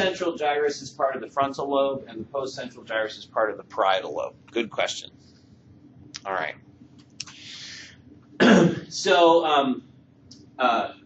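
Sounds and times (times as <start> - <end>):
man clearing throat: 8.4 - 8.9.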